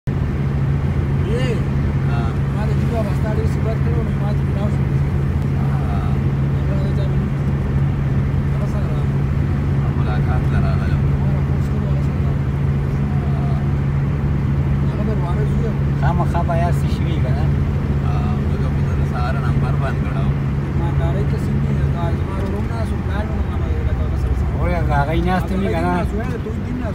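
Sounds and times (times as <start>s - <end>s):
engine drone and road noise: 0.0s - 26.9s.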